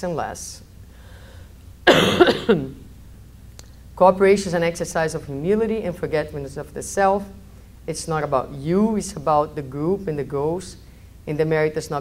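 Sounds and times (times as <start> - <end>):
woman coughing: 1.8 - 2.8.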